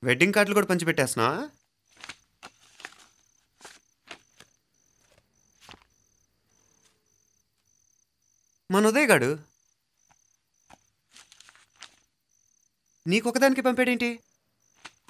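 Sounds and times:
person speaking: 0.0 - 1.6, 8.7 - 9.5, 13.0 - 14.2
cricket chirping: 0.0 - 15.0
paper card rustling: 1.9 - 7.0, 10.0 - 12.1, 14.7 - 15.0.

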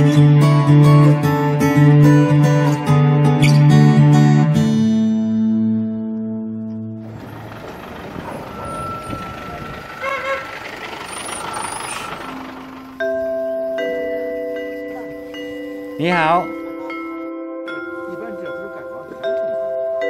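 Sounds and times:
strummed acoustic guitar music: 0.0 - 10.3
road rumbling hiss: 7.0 - 16.0
chiming mallet instrument music: 8.2 - 10.1, 11.1 - 20.0.

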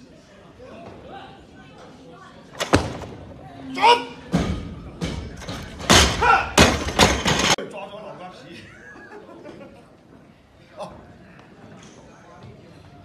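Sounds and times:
barbell slamming onto platform: 4.4 - 7.6.

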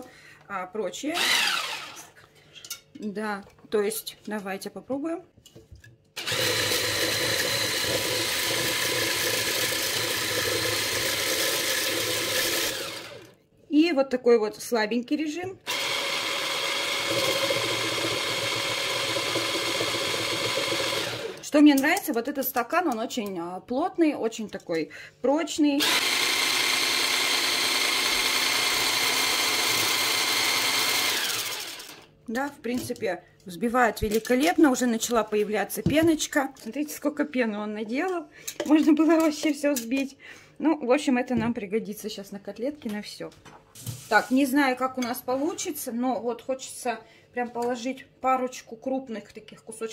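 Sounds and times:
immersion blender whisking eggs: 1.2 - 2.1, 6.2 - 13.4, 15.7 - 21.5, 25.8 - 32.1.

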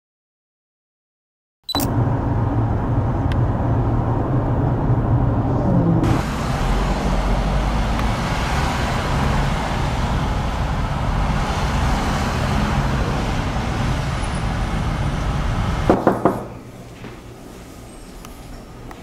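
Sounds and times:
highway traffic rumble: 1.8 - 19.0.

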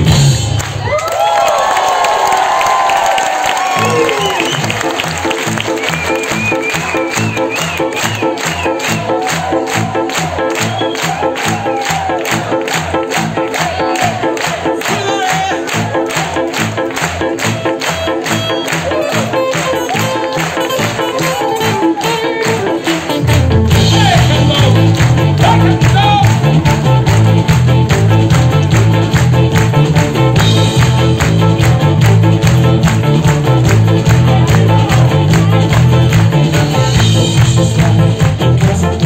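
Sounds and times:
bass line: 0.0 - 0.8, 3.8 - 39.0
live band playing: 0.0 - 1.0, 3.5 - 39.0
crowd cheering: 0.4 - 27.3.

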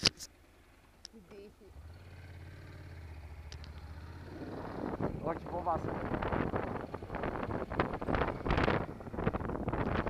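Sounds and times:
motorcycle engine humming: 0.0 - 10.0
wind noise on microphone: 4.3 - 10.0.

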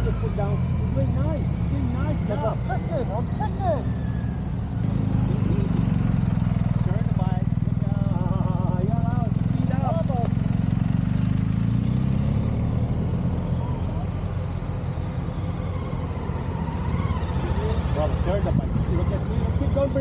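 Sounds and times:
motorcycle engine at low revs: 0.0 - 20.0.

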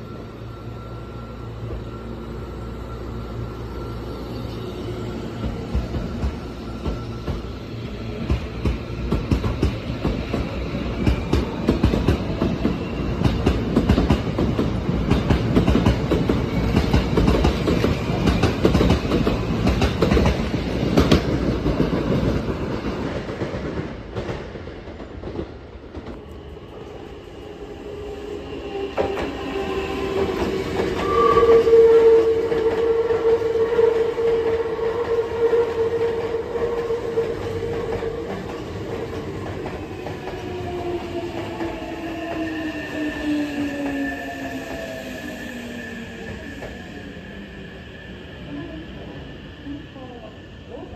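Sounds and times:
steady held train tone: 0.0 - 50.9
train passing: 0.0 - 50.9.

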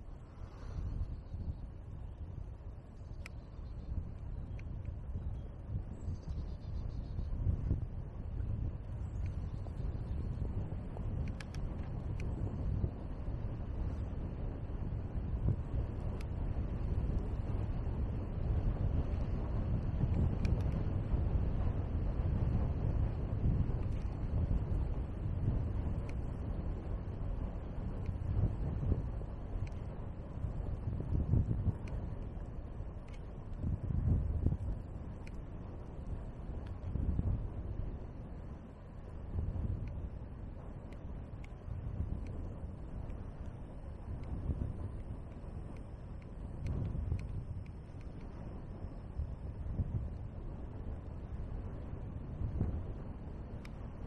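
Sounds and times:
bicycle tyres on wet asphalt: 0.0 - 54.0
wind buffeting microphone: 0.0 - 54.0.

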